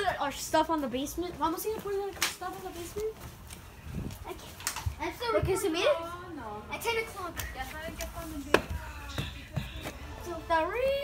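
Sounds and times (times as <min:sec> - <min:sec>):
faint background music: 0:00.0 - 0:11.0
voices: 0:00.0 - 0:11.0.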